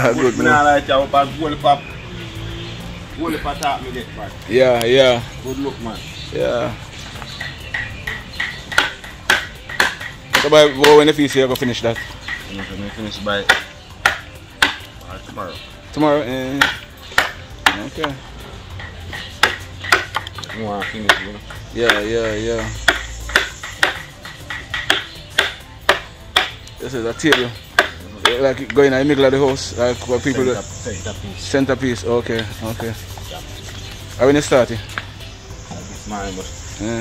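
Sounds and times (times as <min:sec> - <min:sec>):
mallet striking chisel: 0:07.4 - 0:14.9, 0:16.6 - 0:18.2, 0:18.8 - 0:28.8.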